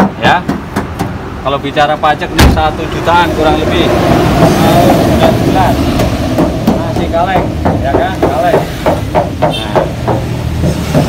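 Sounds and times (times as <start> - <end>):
hand knocking on sheet metal: 0.0 - 1.2, 5.9 - 11.0.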